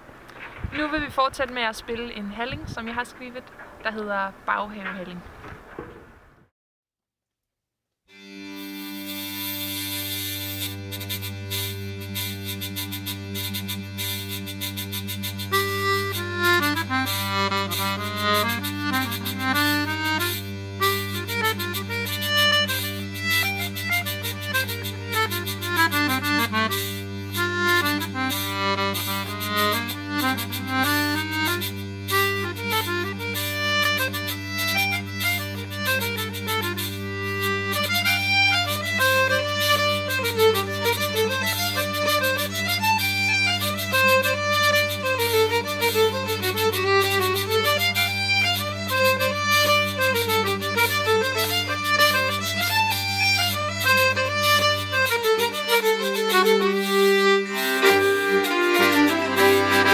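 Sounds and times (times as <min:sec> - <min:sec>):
hurdy-gurdy drones: 0:08.1 - 0:59.9
hurdy-gurdy melody: 0:08.1 - 0:59.9.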